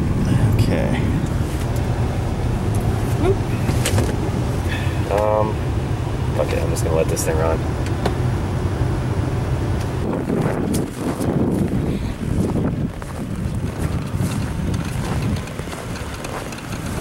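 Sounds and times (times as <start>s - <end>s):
car engine idling: 0.0s - 17.0s
wind buffeting microphone: 0.0s - 17.0s
rustling noise: 10.1s - 17.0s.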